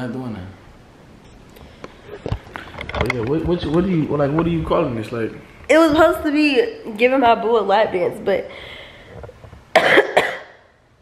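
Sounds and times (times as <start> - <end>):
person coughing: 9.7 - 10.6.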